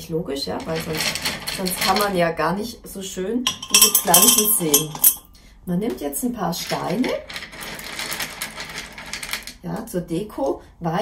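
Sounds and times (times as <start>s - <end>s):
pebbles clicking and rattling: 6.6s - 9.6s.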